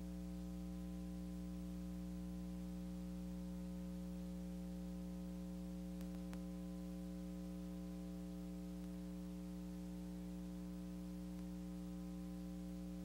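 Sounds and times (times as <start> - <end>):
electrical mains hum: 0.0 - 13.0
faint tape hiss: 0.0 - 13.0
faint clicks: 6.0 - 6.5, 11.3 - 11.6.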